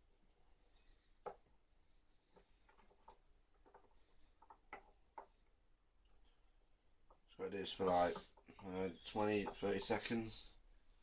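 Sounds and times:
soft clicks and taps: 0:02.3 - 0:06.4.

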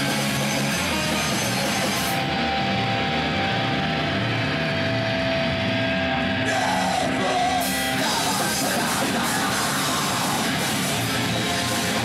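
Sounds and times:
distorted electric guitars ringing: 0:00.0 - 0:12.0
extreme metal band playing live: 0:00.0 - 0:12.0.

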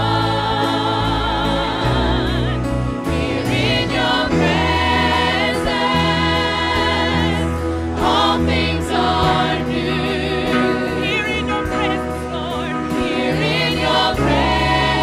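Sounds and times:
group singing gospel with vibrato: 0:00.0 - 0:15.0
instrumental backing with bass line: 0:00.0 - 0:15.0.

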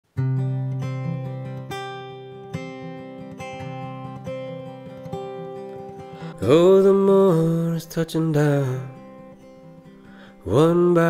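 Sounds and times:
acoustic guitar plucking: 0:00.1 - 0:11.0.

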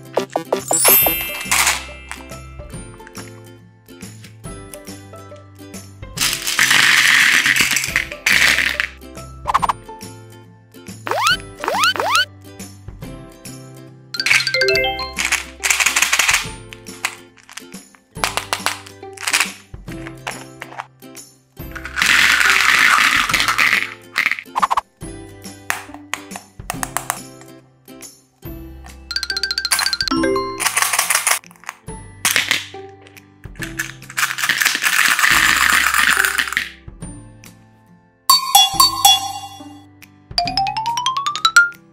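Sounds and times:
background music: 0:00.0 - 0:41.9
candies rattling in a jar: 0:06.2 - 0:09.0, 0:14.2 - 0:20.9, 0:21.7 - 0:24.6, 0:30.6 - 0:32.5, 0:33.6 - 0:36.8.

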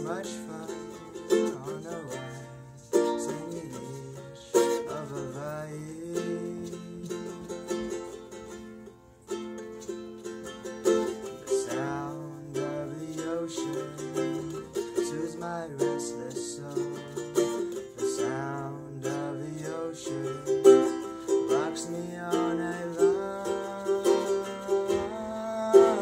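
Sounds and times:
ukulele strumming chords: 0:00.0 - 0:26.0.

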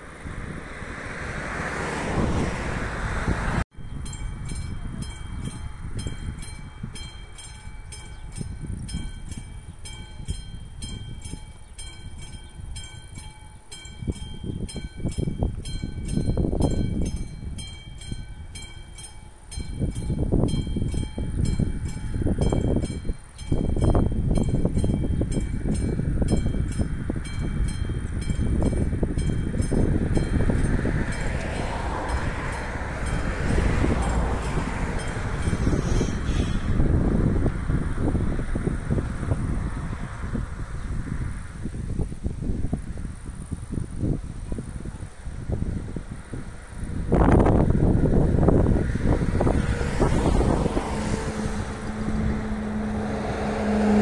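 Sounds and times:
wind gusts on microphone: 0:00.0 - 0:54.0.

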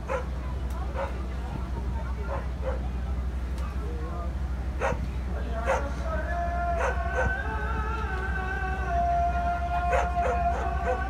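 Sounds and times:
dogs barking: 0:00.0 - 0:01.2, 0:02.2 - 0:02.9, 0:04.8 - 0:06.0, 0:06.8 - 0:07.4, 0:09.8 - 0:11.0
dogs howling: 0:04.8 - 0:05.0, 0:05.6 - 0:06.0, 0:06.7 - 0:07.5, 0:09.8 - 0:11.0.

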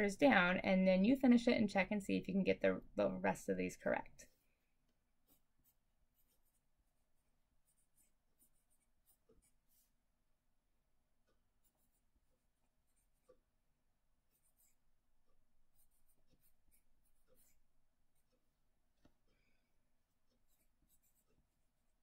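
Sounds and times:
pencil scratching on paper: 0:04.2 - 0:10.1, 0:11.4 - 0:13.6, 0:14.2 - 0:18.6, 0:20.1 - 0:22.0.

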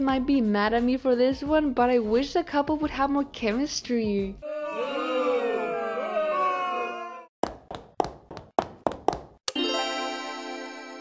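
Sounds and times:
crowd booing: 0:04.4 - 0:07.3.

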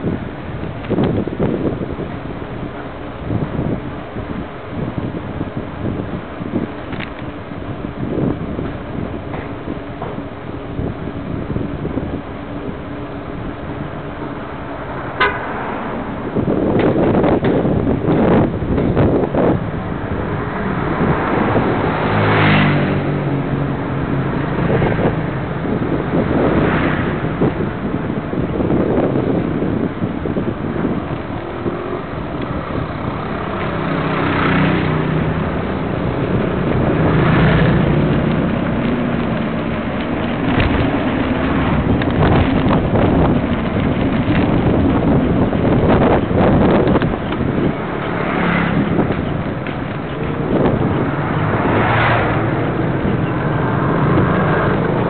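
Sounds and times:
motor vehicles passing: 0:00.0 - 0:55.0
wind noise on microphone: 0:00.0 - 0:55.0.

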